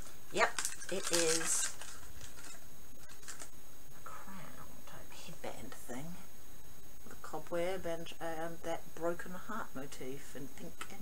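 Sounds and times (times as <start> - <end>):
woman whispering: 4.0 - 6.2.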